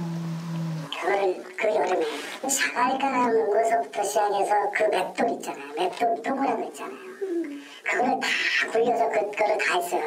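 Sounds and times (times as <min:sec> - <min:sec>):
person talking: 0:00.9 - 0:10.0.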